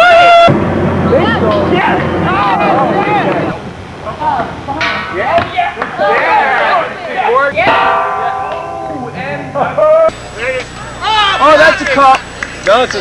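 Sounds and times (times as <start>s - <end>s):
low steady hum: 0.0s - 12.8s
people shouting excitedly: 1.1s - 3.6s, 5.2s - 10.1s.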